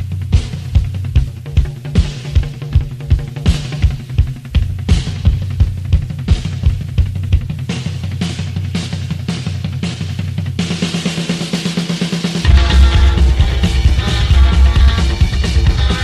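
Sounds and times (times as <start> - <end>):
drum kit beat: 0.0 - 16.0
full band playing: 12.5 - 16.0
low bass notes: 12.5 - 16.0.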